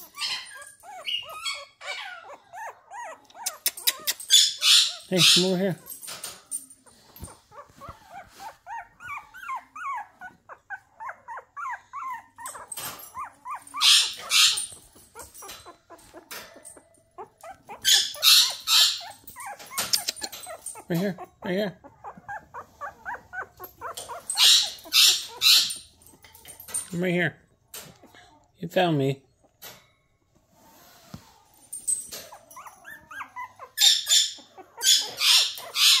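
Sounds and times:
puppy whimpering: 0.0s - 27.0s, 30.7s - 36.0s.

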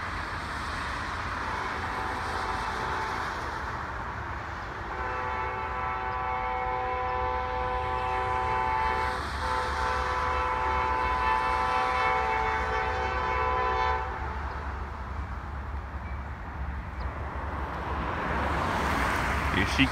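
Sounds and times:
locomotive horn blasts: 1.4s - 3.4s, 4.9s - 14.8s.

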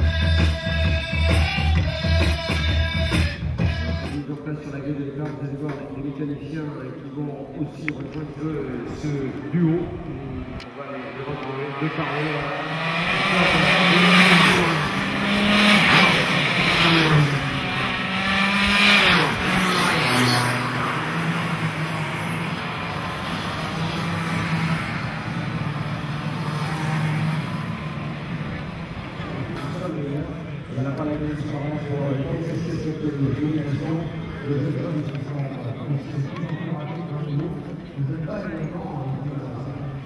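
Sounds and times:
racing kart engines revving: 4.5s - 40.0s.

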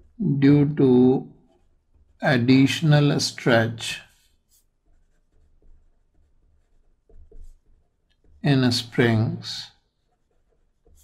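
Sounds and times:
pen scratching on paper: 1.4s - 11.0s.

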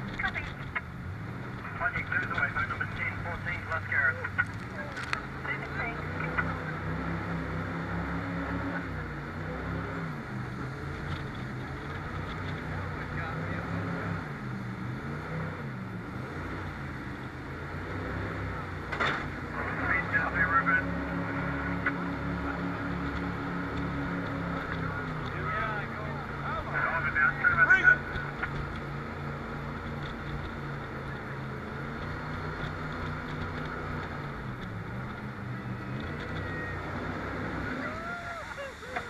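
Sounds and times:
jet boat engine running hard: 0.0s - 39.0s.

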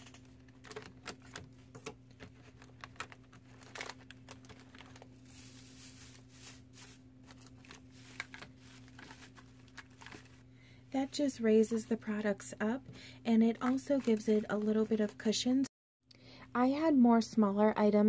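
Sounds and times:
paper filler rustling: 0.0s - 10.4s, 13.5s - 15.2s
faint steady hum: 0.0s - 18.0s
plastic bottles clicking and tapping: 0.1s - 5.0s.

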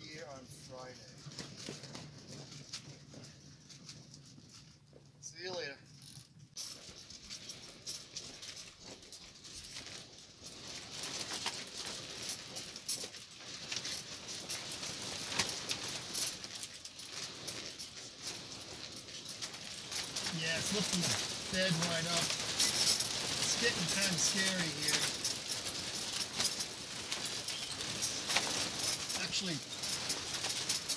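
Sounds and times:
canvas and frame flapping and rattling: 0.0s - 5.2s, 6.4s - 30.9s.

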